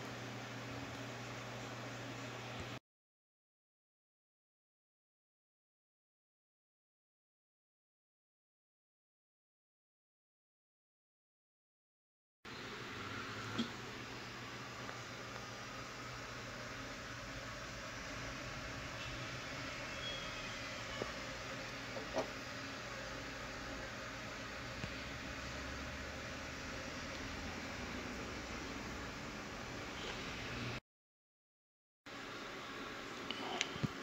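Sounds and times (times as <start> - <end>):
background hiss and hum: 0.0 - 2.8, 12.5 - 30.8, 32.1 - 34.0.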